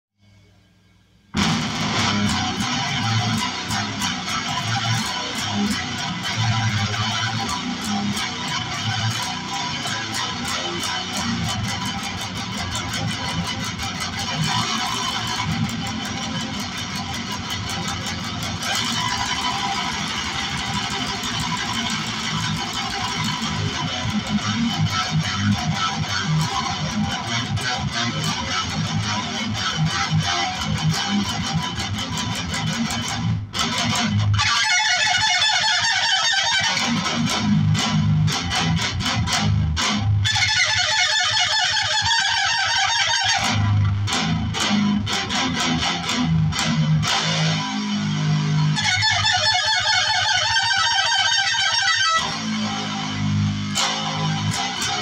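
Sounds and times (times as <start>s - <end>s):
electric guitar fast riffs: 1.4s - 55.0s.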